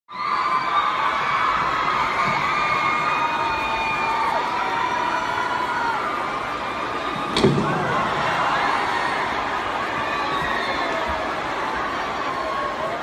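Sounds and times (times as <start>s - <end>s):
crowd screaming and cheering: 0.1s - 13.0s.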